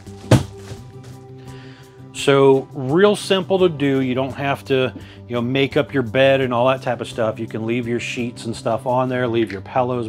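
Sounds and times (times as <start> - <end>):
bed dropping onto frame with thud: 0.0 - 1.2
background music: 0.0 - 10.0.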